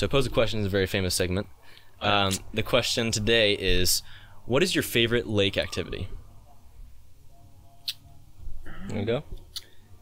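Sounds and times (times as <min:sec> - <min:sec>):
man speaking: 0:00.0 - 0:06.4, 0:08.7 - 0:09.5.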